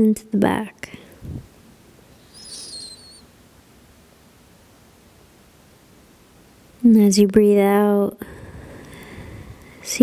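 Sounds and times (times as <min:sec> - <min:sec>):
bird warbling call: 0:02.2 - 0:03.3.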